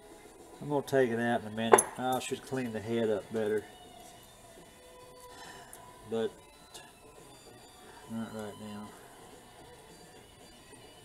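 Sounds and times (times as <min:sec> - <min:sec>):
faint steady background tone: 0:00.0 - 0:11.0.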